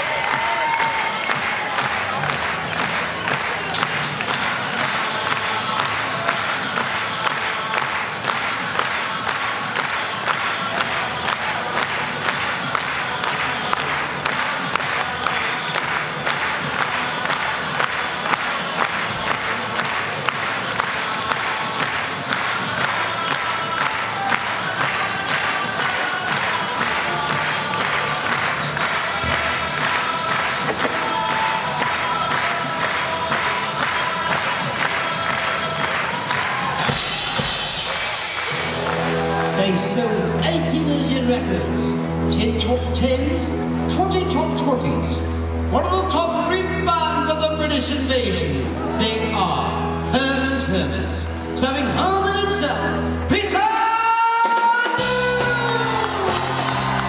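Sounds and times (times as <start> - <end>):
audience cheering and clapping: 0.0 - 40.4, 53.3 - 57.0
music playing: 0.0 - 57.0.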